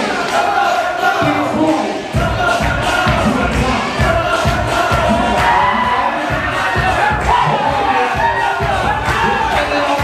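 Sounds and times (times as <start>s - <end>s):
crowd shouting and cheering: 0.0s - 10.0s
dance music with thumping beat: 1.0s - 10.0s.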